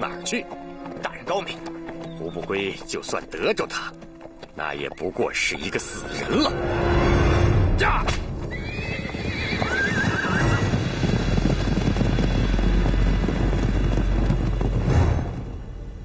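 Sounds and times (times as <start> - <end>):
hoofbeats galloping on dirt: 0.0 - 6.0, 8.3 - 15.5
horses whinnying: 8.4 - 11.8.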